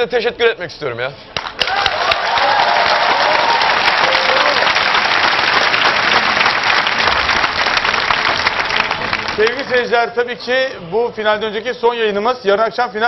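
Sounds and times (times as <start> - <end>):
audience applauding: 1.4 - 10.0.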